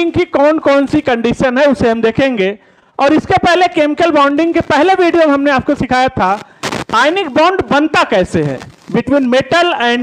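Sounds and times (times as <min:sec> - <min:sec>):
man talking: 0:00.0 - 0:10.0
sharp burst of noise: 0:06.3 - 0:07.6.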